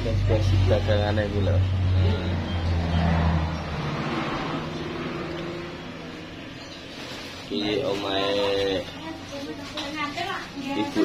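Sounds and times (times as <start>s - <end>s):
vehicle engine rumble passing: 0.0s - 9.0s.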